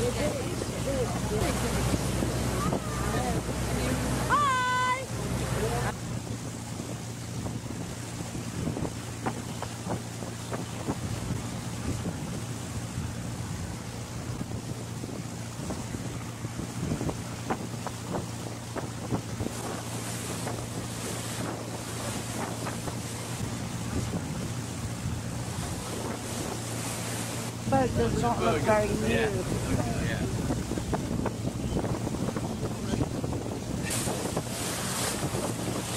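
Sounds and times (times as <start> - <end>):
boat engine droning: 0.0 - 35.9
water noise: 0.0 - 35.9
wind: 0.0 - 35.9.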